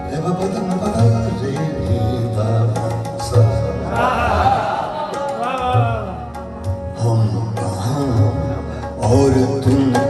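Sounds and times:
harmonium holding notes: 0.0s - 10.0s.

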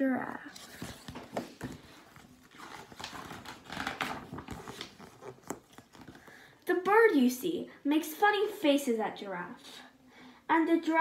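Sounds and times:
paper and cover rustling: 0.5s - 6.4s.

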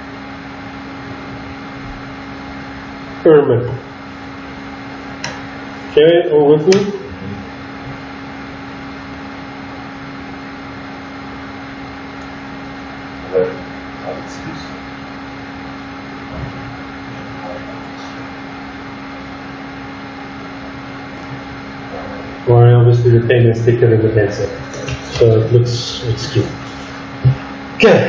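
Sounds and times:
background hum and hiss: 0.0s - 28.0s.

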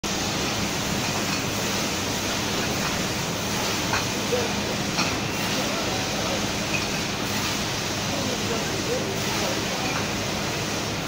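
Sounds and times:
bottle filling machine hum: 0.0s - 11.0s.

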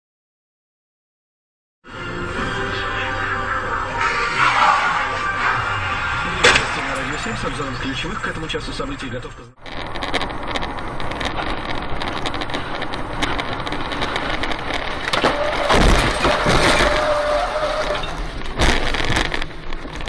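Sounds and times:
car rumble: 1.9s - 20.0s
loud crash: 2.8s - 7.9s, 9.6s - 19.7s
small rattles and clicks: 9.6s - 17.1s, 18.1s - 20.0s.

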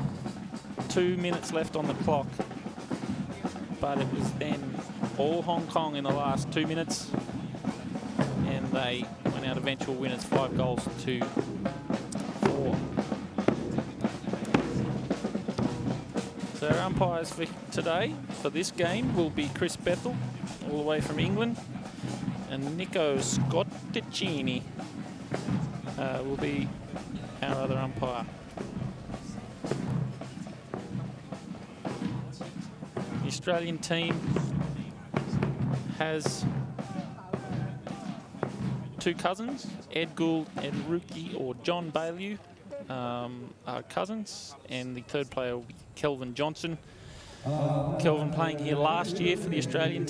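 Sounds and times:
marching band playing: 0.0s - 43.7s, 47.2s - 50.0s
heavy drum beats: 0.0s - 44.2s, 45.0s - 50.0s.

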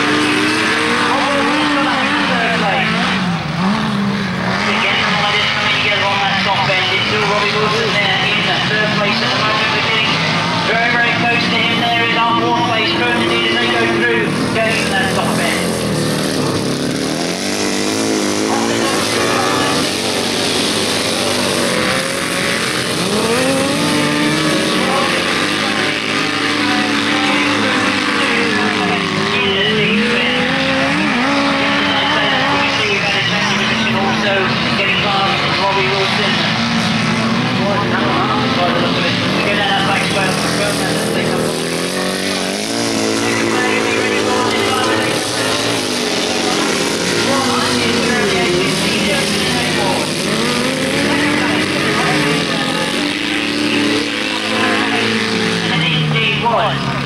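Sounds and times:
racing engines revving: 0.0s - 57.0s.

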